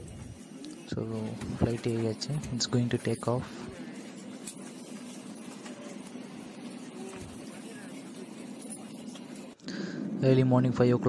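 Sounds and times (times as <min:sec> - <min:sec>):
airliner cabin hum and hiss: 0:00.0 - 0:11.0
faint murmur of passengers: 0:00.0 - 0:11.0.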